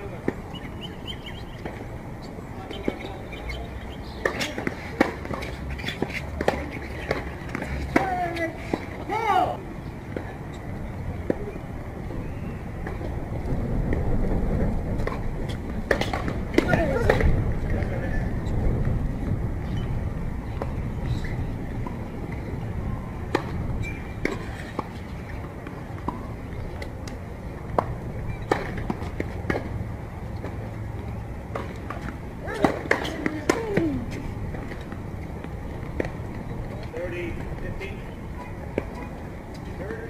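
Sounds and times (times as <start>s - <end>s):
faint voices: 0.0s - 13.1s
tennis balls struck and bouncing: 0.0s - 19.8s, 20.4s - 40.0s
low outdoor rumble: 0.0s - 40.0s.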